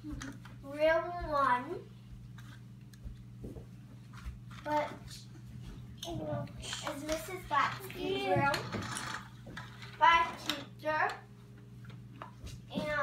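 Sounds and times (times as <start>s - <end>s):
young child speaking: 0.1s - 1.9s, 4.6s - 5.1s, 6.0s - 9.0s, 10.0s - 11.3s, 12.7s - 13.0s.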